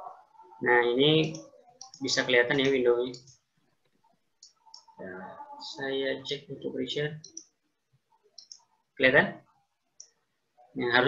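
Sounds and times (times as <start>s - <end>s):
person speaking: 0.0s - 3.4s.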